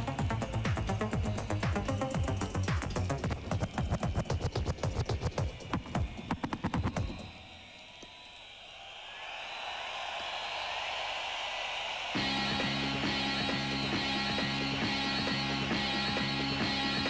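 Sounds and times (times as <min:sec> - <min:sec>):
techno with driving kick drum: 0:00.0 - 0:07.4.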